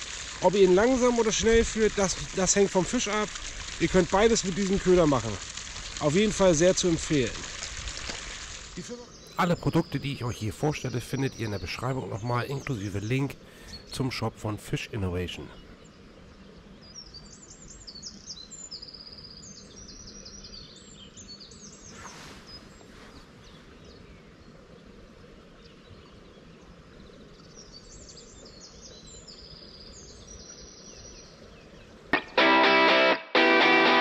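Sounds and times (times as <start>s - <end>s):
faint outdoor background noise: 0.0s - 34.0s
songbirds singing: 8.8s - 32.5s
brief soft hiss: 21.8s - 23.7s.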